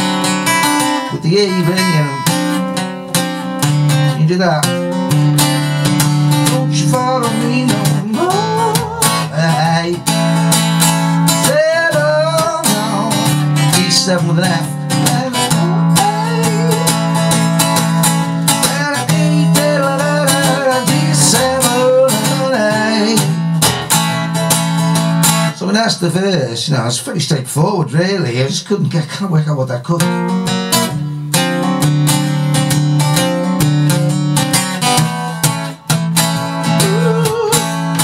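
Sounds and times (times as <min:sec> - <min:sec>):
acoustic guitar strumming: 0:00.0 - 0:38.0.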